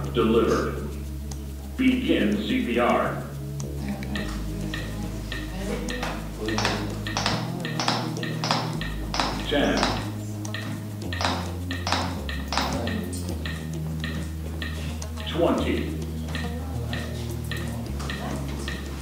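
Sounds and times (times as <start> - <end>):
background music: 0.0 - 19.0
metronome beeping: 0.0 - 19.0.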